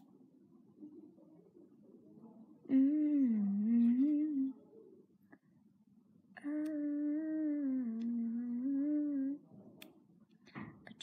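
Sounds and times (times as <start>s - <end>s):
girl humming a long note: 6.4s - 9.4s.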